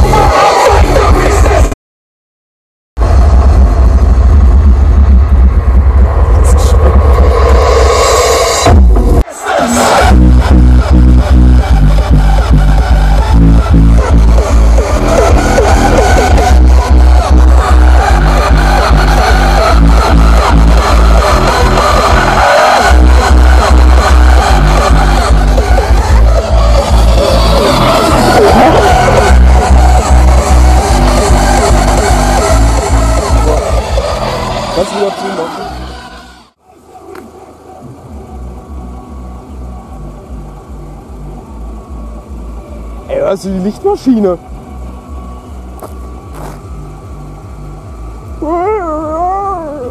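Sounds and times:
bass-heavy electronic music: 0.0 - 1.8, 3.0 - 49.9.

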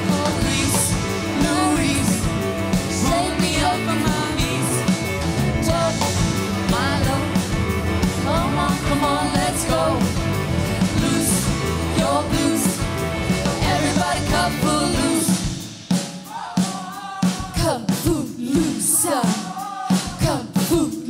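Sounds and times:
lead singing: 0.0 - 21.0
live pop-rock band: 0.0 - 21.0.

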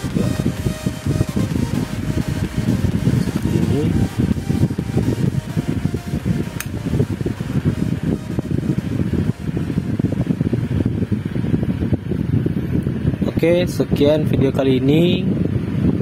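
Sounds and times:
electric fan running: 0.0 - 16.0.

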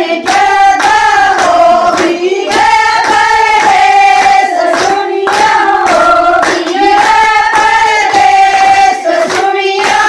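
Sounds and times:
hand claps: 0.0 - 10.0
women singing folk song: 0.0 - 10.0.

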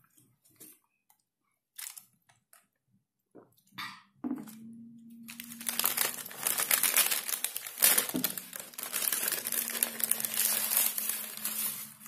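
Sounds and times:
paper bag crinkling: 5.3 - 12.0.

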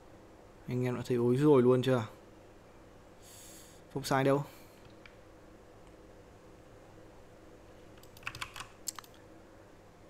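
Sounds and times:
keyboard keystrokes: 8.0 - 9.2.

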